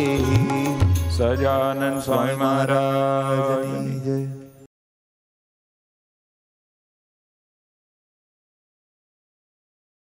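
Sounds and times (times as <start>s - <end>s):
tabla drumming: 0.0s - 1.7s
voices singing: 0.0s - 4.3s.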